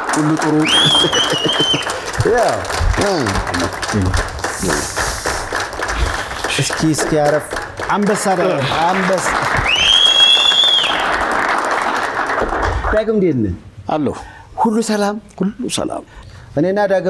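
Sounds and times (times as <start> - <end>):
men talking: 0.0 - 9.8, 12.9 - 17.0
audience applauding: 0.0 - 13.0.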